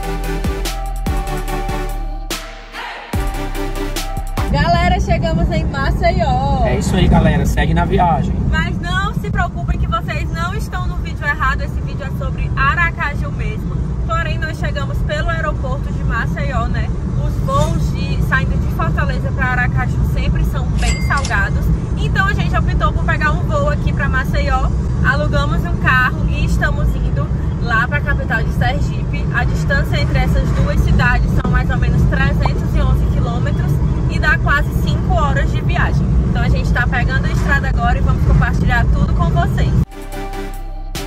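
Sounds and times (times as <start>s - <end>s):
car road and engine rumble: 3.3s - 39.9s
woman talking: 4.5s - 6.7s, 8.5s - 39.9s.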